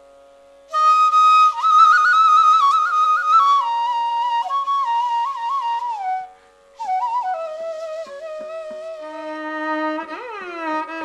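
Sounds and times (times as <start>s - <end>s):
bamboo flute melody: 0.7s - 11.0s.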